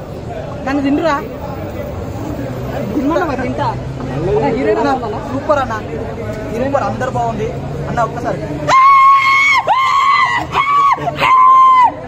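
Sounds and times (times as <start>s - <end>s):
person whooping: 8.7s - 12.0s.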